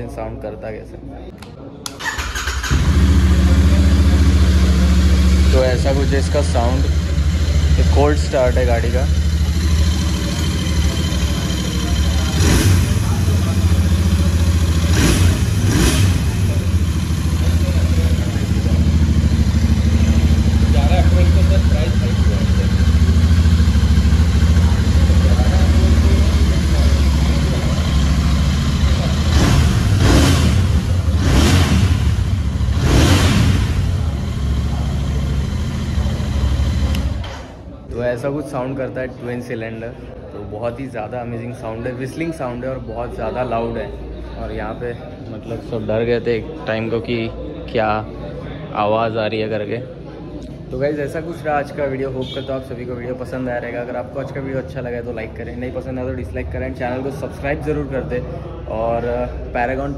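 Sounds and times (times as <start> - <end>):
motorcycle engine idling and revving: 2.0 - 37.6.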